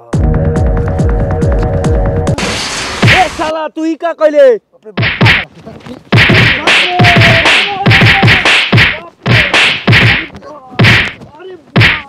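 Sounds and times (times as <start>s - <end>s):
punching and kicking whacks: 3.0s - 3.3s, 5.0s - 5.5s, 6.1s - 11.2s, 11.8s - 12.0s.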